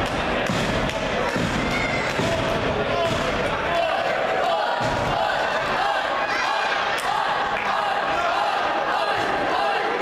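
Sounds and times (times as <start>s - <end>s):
crowd shouting in a hall: 0.0s - 10.0s.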